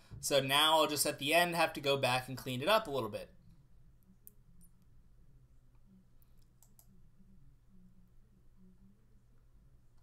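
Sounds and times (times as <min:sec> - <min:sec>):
low steady hum: 0:00.0 - 0:10.0
computer mouse clicks: 0:06.2 - 0:07.0.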